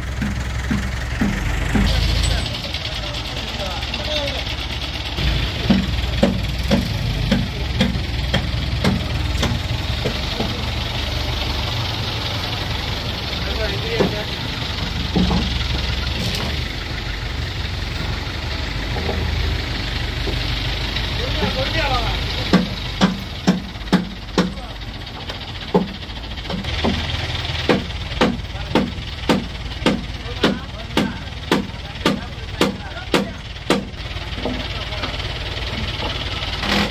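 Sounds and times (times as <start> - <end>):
vehicle engine idling: 0.0 - 36.9
sharp knocks: 0.2 - 2.0, 5.5 - 10.6, 15.1 - 15.6, 22.5 - 24.6, 25.7 - 34.6.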